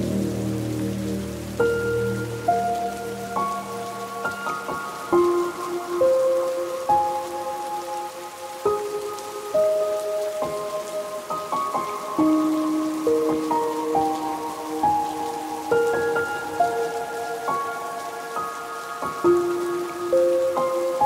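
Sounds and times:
gentle instrumental melody: 0.0 - 21.0
steady rain: 0.0 - 21.0.

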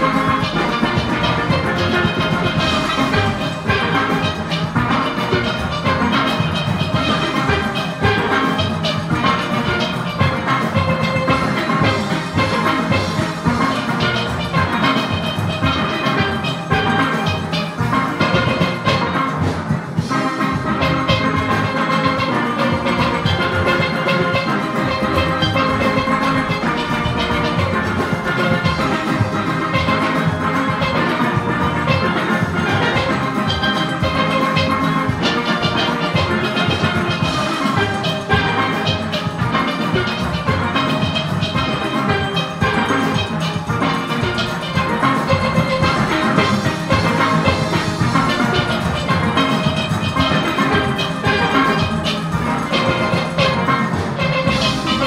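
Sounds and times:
steel orchestra playing: 0.0 - 55.0.

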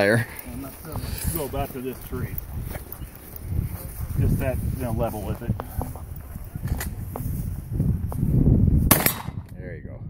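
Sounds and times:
shotgun shot: 8.9 - 9.4.

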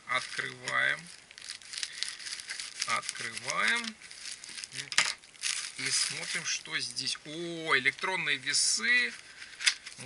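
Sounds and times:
plastic mailer bag crinkling: 0.0 - 10.0.

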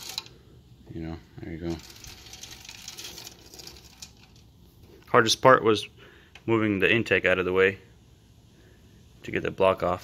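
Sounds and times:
faint rustling: 1.1 - 5.3.

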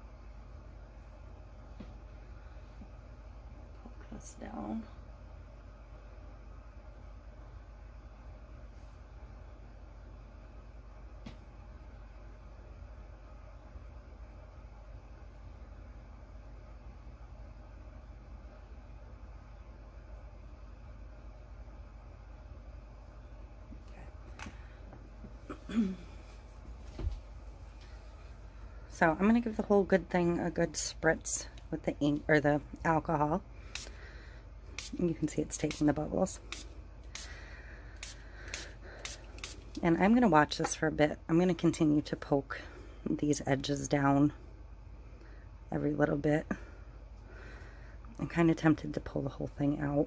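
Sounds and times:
low room hum: 0.0 - 50.0
spray bottle hissing: 33.7 - 34.0, 34.8 - 35.0, 35.6 - 37.4, 38.0 - 39.8.

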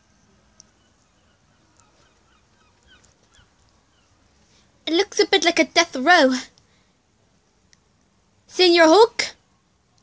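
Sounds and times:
faint distant bird chirps: 0.0 - 5.3, 9.3 - 10.0.

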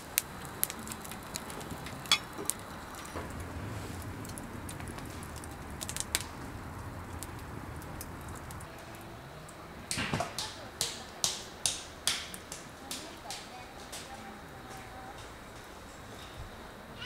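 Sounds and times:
campfire crackling and popping: 0.0 - 14.2.

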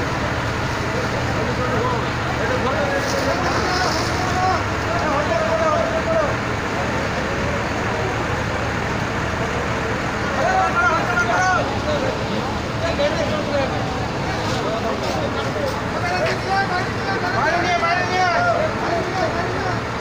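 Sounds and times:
engine and traffic rumble: 0.0 - 20.0
indistinct voices talking: 0.0 - 20.0.

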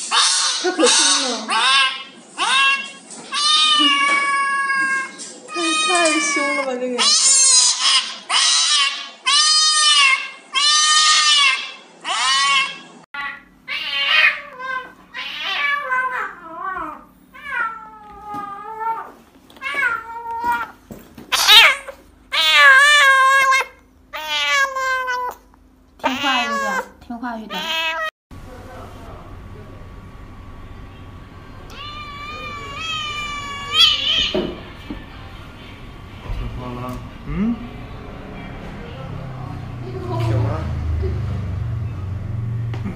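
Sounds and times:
cat yowling: 0.0 - 28.1, 31.7 - 34.7
cat meowing: 0.1 - 25.4, 26.0 - 28.1, 31.7 - 34.7.

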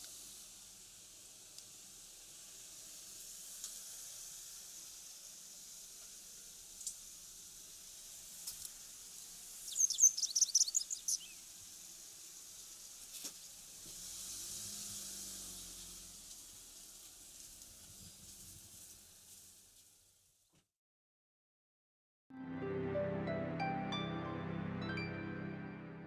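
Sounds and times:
steady background hiss: 0.0 - 20.2
wagtail calling: 9.6 - 11.4.

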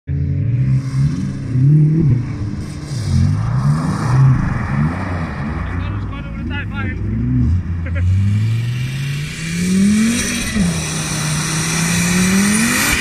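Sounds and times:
car engine revving: 0.1 - 13.0
studded tyres spinning on ice: 0.7 - 6.2.

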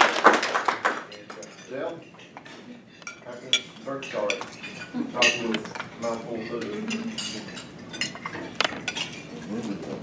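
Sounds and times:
cutlery clinking on plates: 1.0 - 10.0
murmur of diners talking: 1.0 - 10.0.

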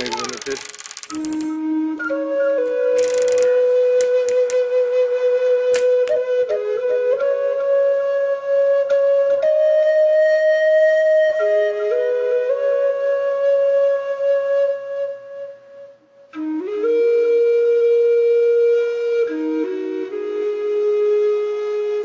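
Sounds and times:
short clicks: 0.0 - 1.6, 3.0 - 4.7, 5.7 - 6.2
flute music: 1.1 - 22.0.

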